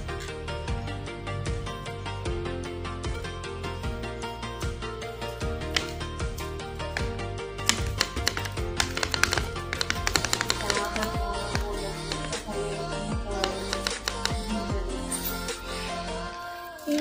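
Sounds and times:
background music with bass line: 0:00.0 - 0:16.5.

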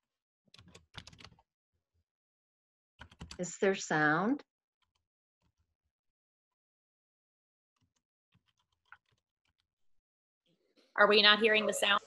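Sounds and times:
computer keyboard clicks: 0:00.6 - 0:01.4.

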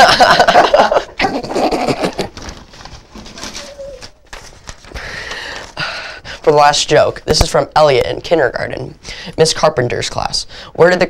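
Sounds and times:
boys laughing: 0:00.0 - 0:02.4
paper rustling: 0:01.6 - 0:07.6.

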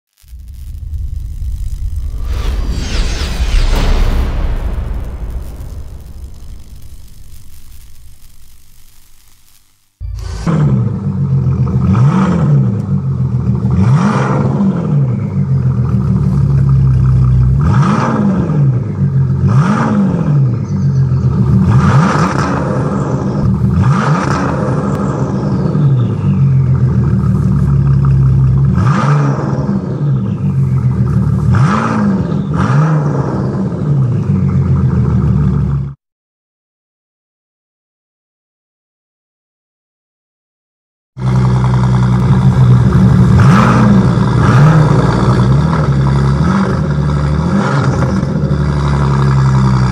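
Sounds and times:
car engine revving: 0:10.2 - 0:20.6, 0:21.2 - 0:35.3, 0:41.2 - 0:49.9.

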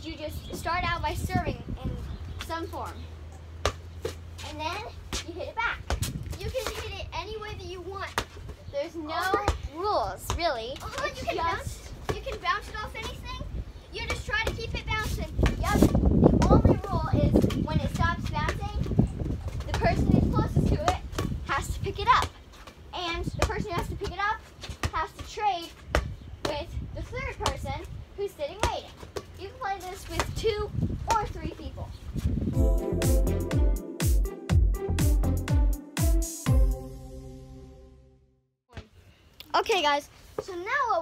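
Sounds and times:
ball bouncing on concrete: 0:03.3 - 0:07.0, 0:08.0 - 0:08.6, 0:10.2 - 0:11.3, 0:12.0 - 0:13.2, 0:14.0 - 0:26.7, 0:28.5 - 0:30.5
children calling out and laughing: 0:08.7 - 0:15.9
music with steady beat: 0:32.6 - 0:37.8.

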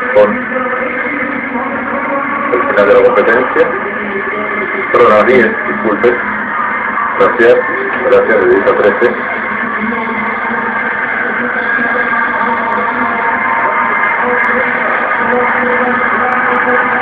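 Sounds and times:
crowd cheering: 0:00.0 - 0:17.0.

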